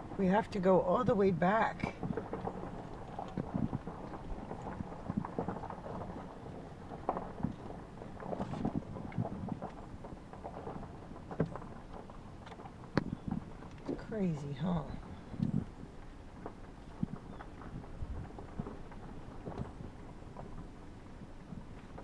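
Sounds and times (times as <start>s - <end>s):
small clicks and knocks: 2.0s - 14.3s, 14.9s - 22.0s.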